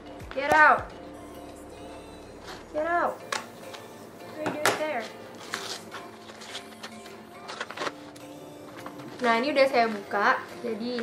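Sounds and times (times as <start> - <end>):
scissors cutting paper parcel: 4.6 - 8.2.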